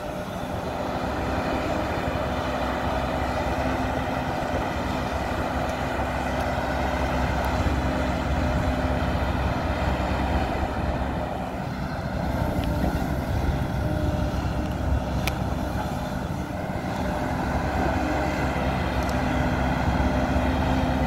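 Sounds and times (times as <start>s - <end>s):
diesel engine hum: 0.0s - 21.0s
hydraulics hissing and whining: 0.0s - 21.0s.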